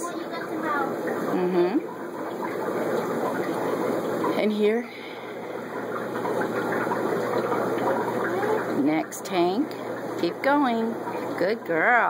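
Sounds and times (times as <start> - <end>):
water rushing and bubbling: 0.0 - 12.0.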